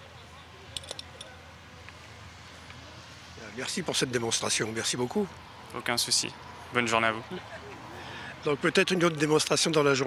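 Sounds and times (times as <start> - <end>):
distant voices: 0.0 - 10.0.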